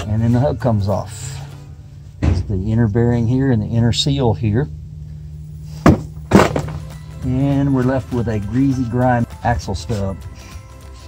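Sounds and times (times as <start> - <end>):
wheel hub knocking down: 5.2 - 8.4.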